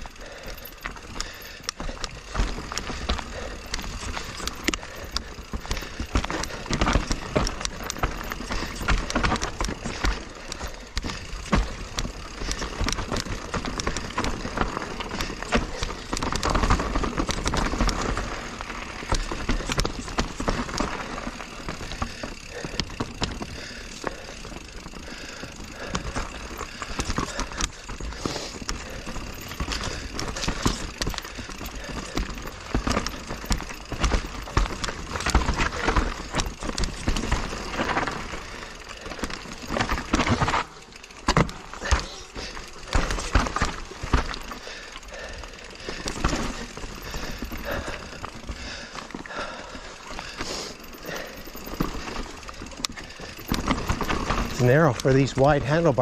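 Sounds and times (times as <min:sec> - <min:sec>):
bike knocking and rattling: 0:00.0 - 0:56.0
tyres rolling over dirt and rock: 0:00.0 - 0:56.0.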